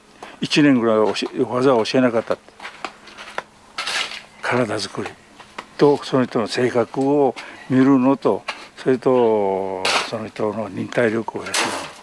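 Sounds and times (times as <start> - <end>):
man speaking: 0.4 - 2.4, 4.4 - 5.2, 5.8 - 11.8.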